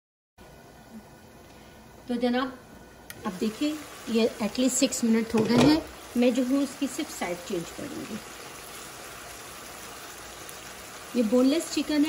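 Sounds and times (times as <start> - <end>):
chicken frying in a pan: 3.1 - 12.0.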